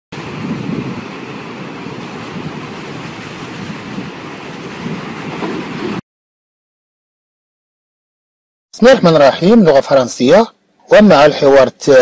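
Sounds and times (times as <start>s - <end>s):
steady rushing noise: 0.1s - 6.0s.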